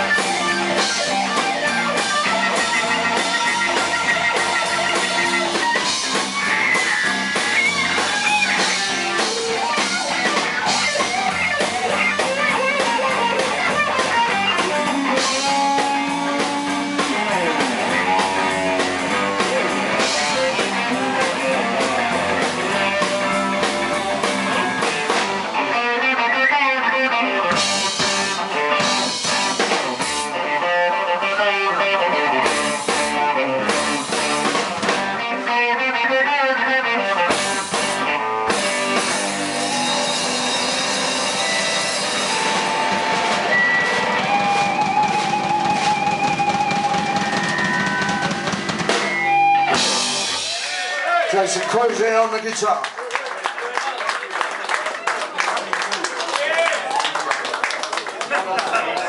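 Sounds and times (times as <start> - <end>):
electric guitars: 0.0 - 52.7
drum kit: 0.0 - 52.8.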